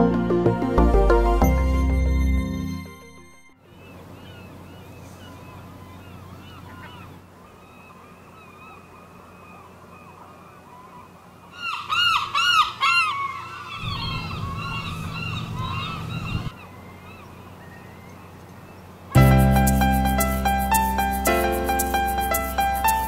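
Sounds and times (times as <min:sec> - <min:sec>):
gulls calling: 0:03.6 - 0:23.0.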